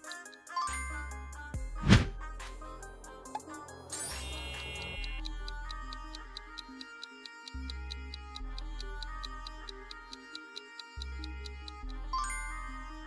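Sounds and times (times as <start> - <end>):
clock-like ticks: 0.0 - 0.7, 3.2 - 12.6.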